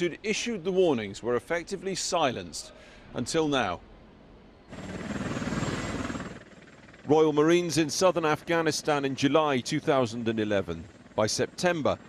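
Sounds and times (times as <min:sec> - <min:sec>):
helicopter rotor and engine: 0:04.6 - 0:12.0.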